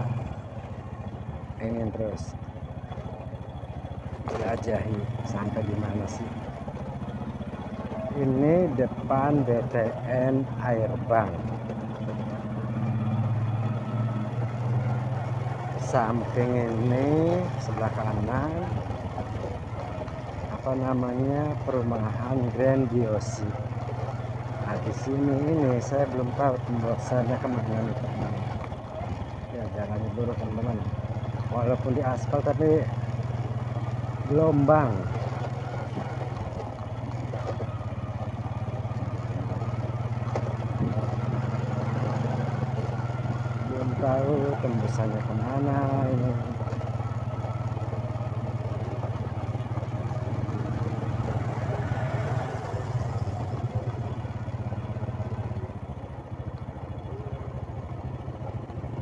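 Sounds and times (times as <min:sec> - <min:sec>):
motorcycle engine running low: 0:00.0 - 0:59.0.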